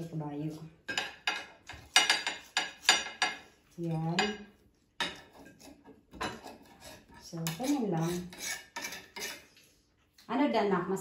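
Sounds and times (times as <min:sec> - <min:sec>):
metal scraping on skewer: 0:05.0 - 0:09.7.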